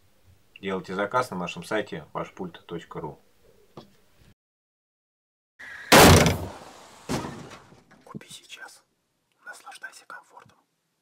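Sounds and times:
loud impact: 0:05.9 - 0:07.6.

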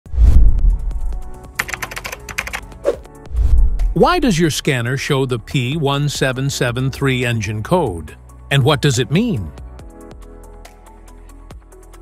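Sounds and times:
deep bass boom: 0:00.1 - 0:01.0
keyboard typing clicks: 0:01.6 - 0:02.6.

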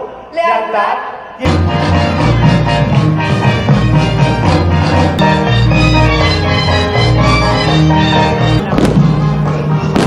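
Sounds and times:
festive music: 0:01.4 - 0:10.0
fireworks bursting: 0:08.6 - 0:09.2.

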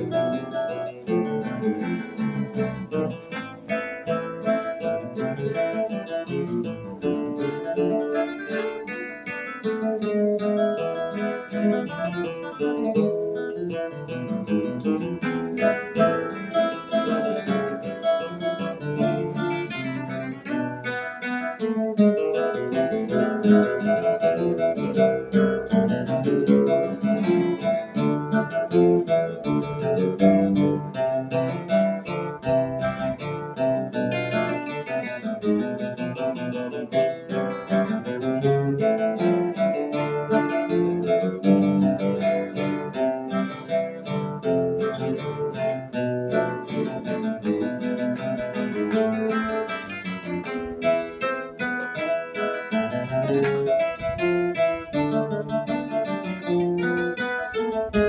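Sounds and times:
classical guitars playing hymn: 0:00.0 - 0:58.0.

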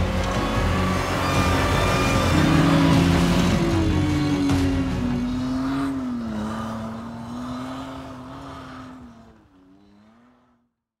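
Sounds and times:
truck engine pulling away: 0:00.0 - 0:10.7.

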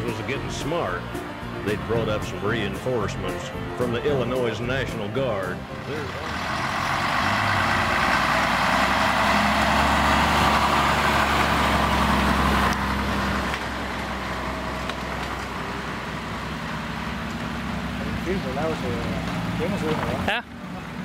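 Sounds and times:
diesel truck driving past: 0:00.0 - 0:21.0.

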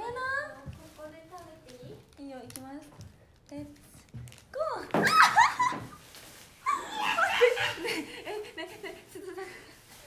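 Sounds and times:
woman squealing and laughing: 0:05.0 - 0:06.0, 0:06.6 - 0:08.1.

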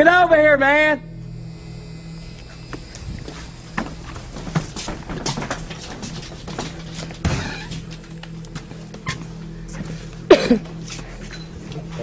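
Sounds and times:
steady electrical hum: 0:00.0 - 0:12.0
hurried footsteps: 0:02.5 - 0:11.7.

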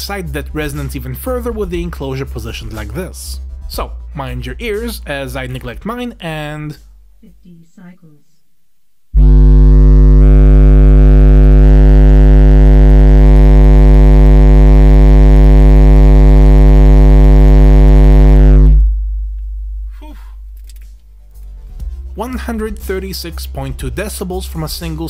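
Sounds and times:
deep buzzy subwoofer test tone: 0:09.0 - 0:21.3.

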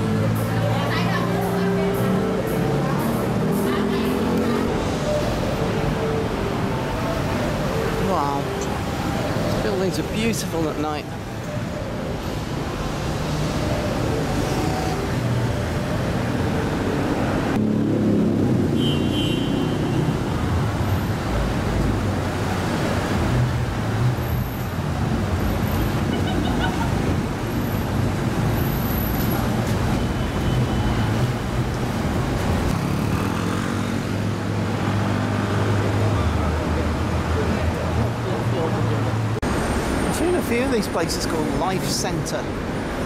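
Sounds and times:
car engines passing: 0:00.0 - 0:43.0
voices of people in street: 0:00.0 - 0:43.0.

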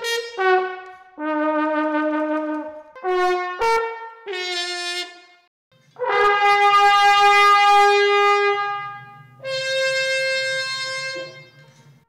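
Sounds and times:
glass trombone held notes: 0:06.0 - 0:11.8.

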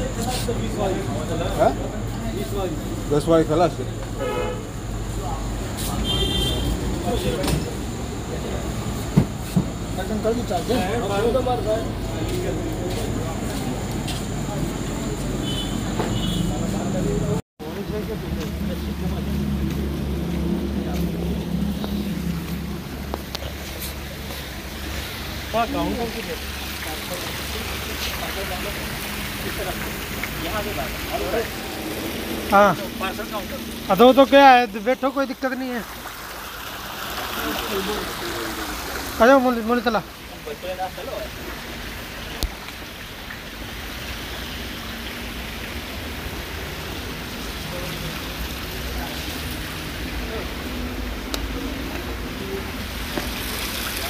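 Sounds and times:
fountain water splashing: 0:00.0 - 0:54.0.

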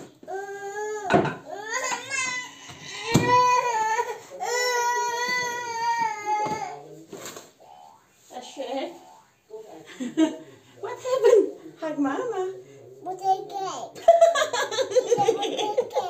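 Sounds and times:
toddler crying: 0:00.2 - 0:06.8.

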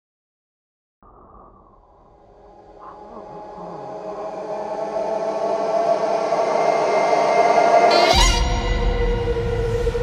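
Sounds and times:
dense drone of steady tones: 0:01.8 - 0:10.0.

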